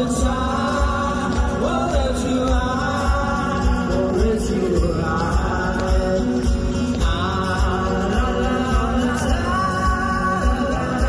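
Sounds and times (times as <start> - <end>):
loud live rock band: 0.0 - 11.0.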